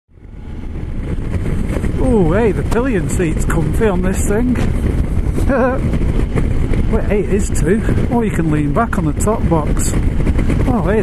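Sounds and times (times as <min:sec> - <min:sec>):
motorcycle engine rumble: 0:00.2 - 0:11.0
wind noise on microphone: 0:00.2 - 0:11.0.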